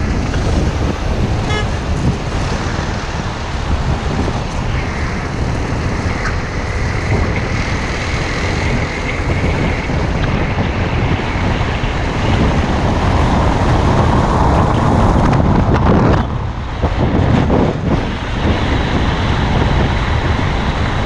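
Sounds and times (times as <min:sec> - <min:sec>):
road and traffic noise: 0:00.0 - 0:21.0
wind buffeting microphone: 0:00.0 - 0:21.0.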